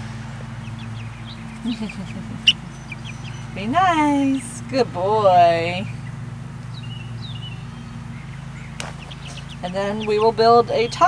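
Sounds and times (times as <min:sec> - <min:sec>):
steady low hum: 0:00.0 - 0:11.0
chick cheeping: 0:00.6 - 0:04.5, 0:06.8 - 0:11.0.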